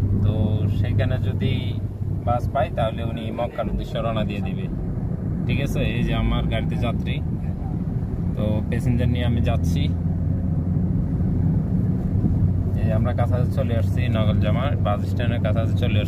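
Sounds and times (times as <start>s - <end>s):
car engine drone: 0.0s - 16.0s
road noise: 0.0s - 16.0s.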